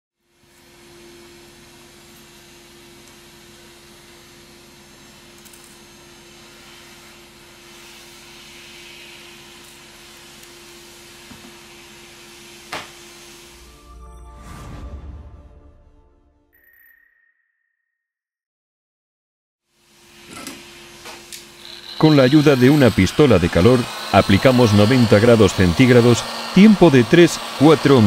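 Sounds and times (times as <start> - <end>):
small fan whirring: 20.2 - 28.0.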